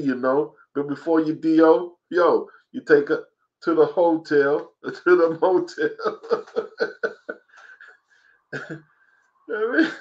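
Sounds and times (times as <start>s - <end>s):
man talking: 0.0s - 8.0s, 8.6s - 8.8s, 9.4s - 10.0s
man coughing and chuckling: 5.6s - 7.9s, 8.6s - 10.0s.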